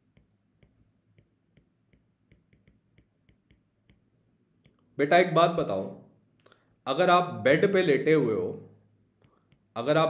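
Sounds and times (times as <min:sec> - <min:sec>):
stylus tapping on tablet screen: 0:00.0 - 0:04.2.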